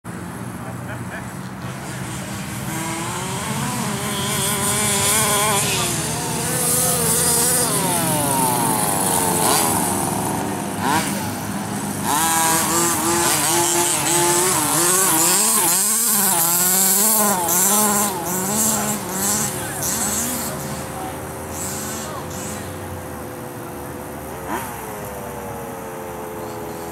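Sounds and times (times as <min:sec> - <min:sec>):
rc truck engines revving: 0:00.1 - 0:26.9.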